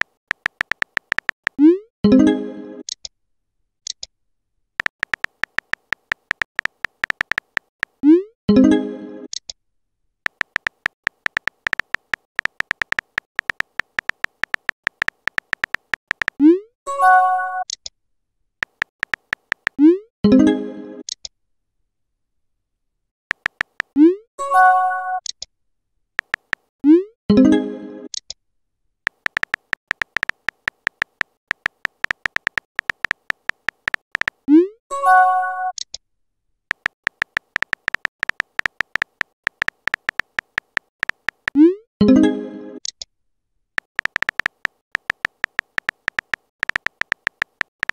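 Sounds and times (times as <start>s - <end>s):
phone keyboard typing clicks: 0.0s - 1.6s, 4.8s - 8.0s, 10.3s - 16.4s, 18.6s - 19.8s, 23.3s - 24.0s, 26.2s - 26.7s, 29.1s - 34.5s, 36.7s - 41.6s, 43.8s - 47.9s.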